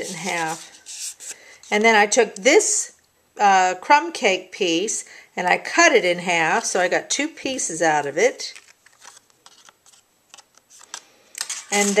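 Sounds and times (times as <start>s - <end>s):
paper rustling: 0.0s - 1.9s, 8.5s - 12.0s.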